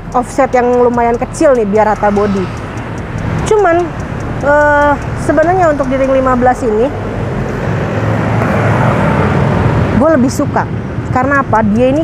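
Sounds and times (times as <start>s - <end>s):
motorcycles passing: 0.0s - 12.0s
street traffic rumble: 0.0s - 12.0s.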